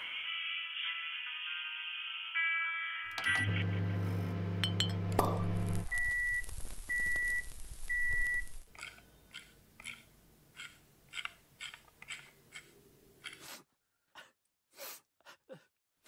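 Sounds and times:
microwave beeps: 3.1s - 8.6s
microwave oven humming: 3.2s - 8.6s.

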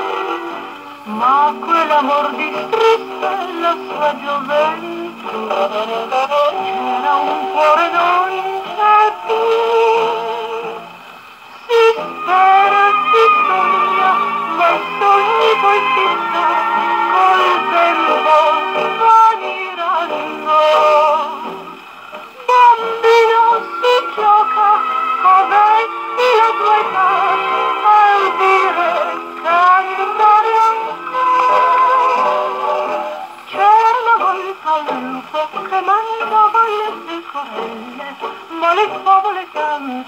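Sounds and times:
woman singing with orchestra: 1.0s - 10.8s, 11.6s - 21.8s, 22.4s - 40.0s.

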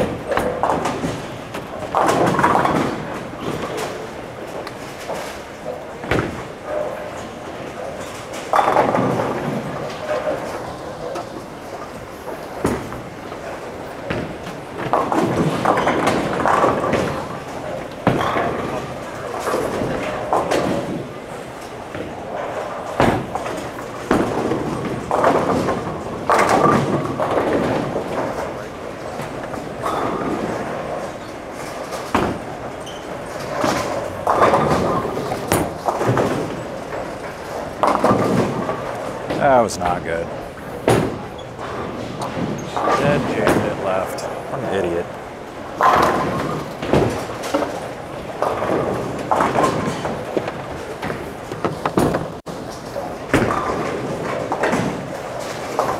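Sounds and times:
bowling balls and pins clattering: 0.0s - 55.9s.

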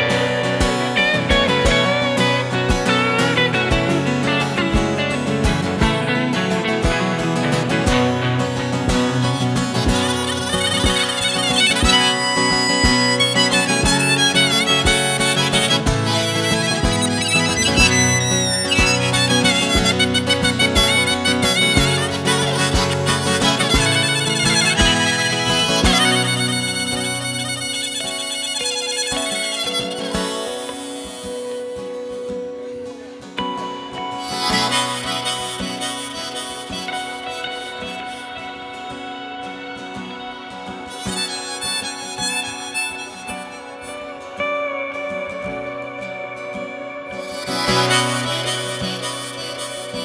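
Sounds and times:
acoustic guitar: 0.0s - 50.0s
electric guitar: 0.0s - 50.0s
lead melody with bending notes: 0.0s - 50.0s.

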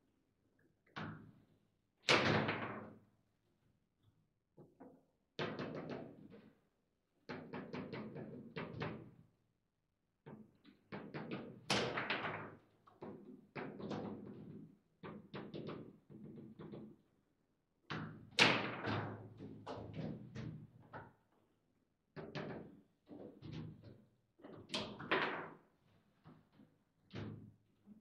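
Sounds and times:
table football clacks and knocks: 0.9s - 1.4s, 4.6s - 6.4s, 7.3s - 9.2s, 10.3s - 17.0s, 17.9s - 21.2s, 22.2s - 27.6s.

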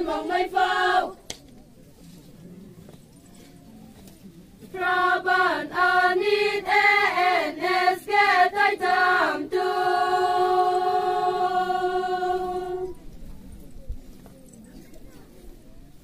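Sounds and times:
women singing in unison: 0.0s - 1.2s, 4.7s - 13.0s.

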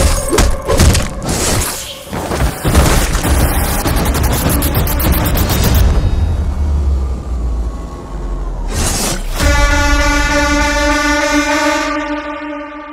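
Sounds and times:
sustained horn-like blast: 9.2s - 12.9s.

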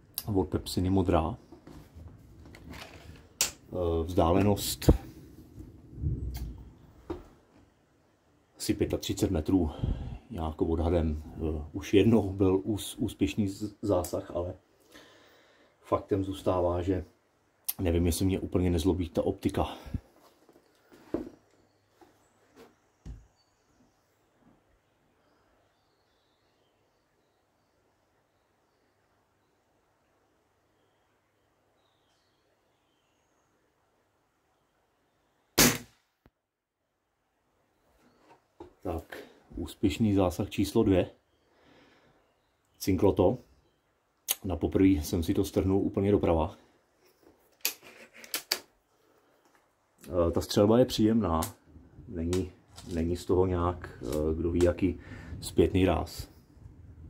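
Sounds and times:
air rifle shot: 35.6s - 36.1s.

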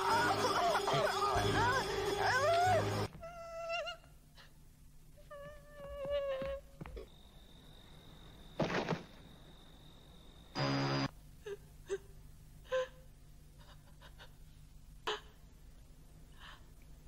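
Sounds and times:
high wavering cries: 0.0s - 4.1s.

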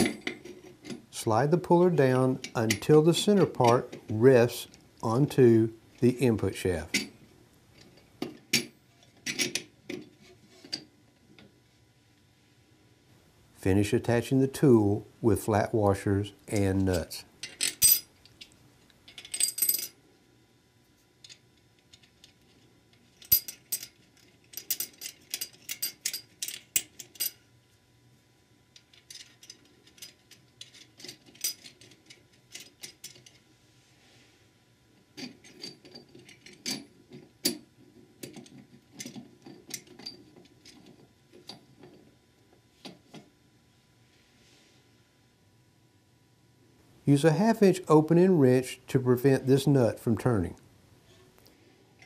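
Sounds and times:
metal washers and nuts clinking: 1.9s - 4.7s, 16.5s - 20.0s, 21.2s - 27.5s, 28.7s - 33.4s, 35.1s - 42.1s.

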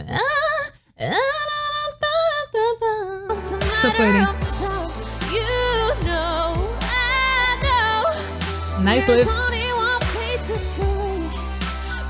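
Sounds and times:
woman singing pop ballad: 0.0s - 12.0s.

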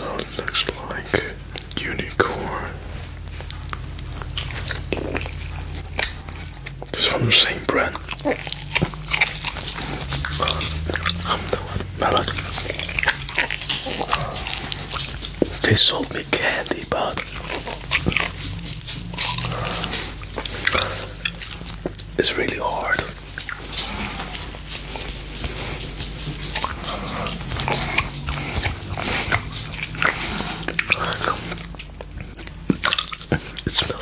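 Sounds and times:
low hum: 0.0s - 34.0s
wet mouth clicks and squishes: 0.0s - 34.0s
person biting gummy candy: 3.4s - 34.0s.

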